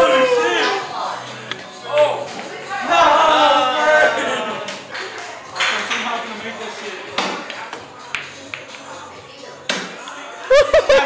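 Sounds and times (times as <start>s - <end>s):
background music: 0.0s - 11.0s
pool balls clacking: 4.7s - 8.9s.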